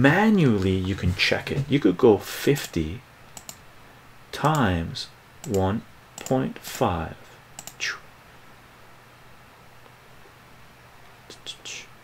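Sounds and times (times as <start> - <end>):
low room hum: 0.0 - 12.0
soft whispering: 11.2 - 12.0.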